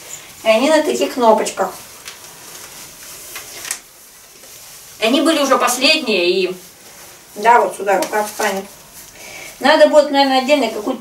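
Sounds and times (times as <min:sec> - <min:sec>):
fabric rustling: 0:00.0 - 0:11.0.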